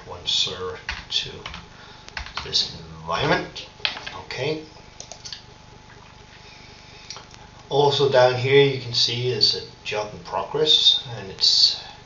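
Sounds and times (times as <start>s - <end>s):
faint low hum: 0.0s - 12.0s
computer mouse clicks: 5.0s - 5.4s.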